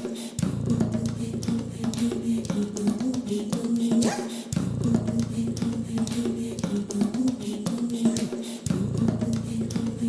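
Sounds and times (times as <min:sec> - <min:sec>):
percussive beats: 0:00.0 - 0:10.0.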